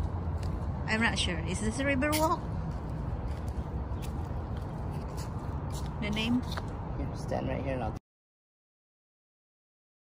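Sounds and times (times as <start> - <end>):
footsteps on concrete: 0.0 - 0.8, 1.7 - 6.8
low outdoor background rumble: 0.0 - 8.0.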